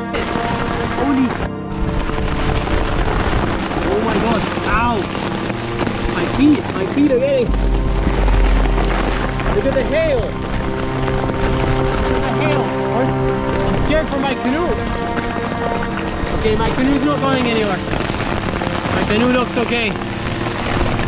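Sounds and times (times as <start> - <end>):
hail and rain pelting down: 0.0 - 21.0
music with sustained tones: 0.0 - 21.0
wind gust on microphone: 0.0 - 21.0.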